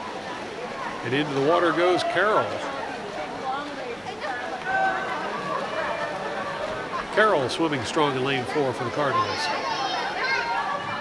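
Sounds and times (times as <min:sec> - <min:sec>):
people talking and calling: 0:00.0 - 0:11.0.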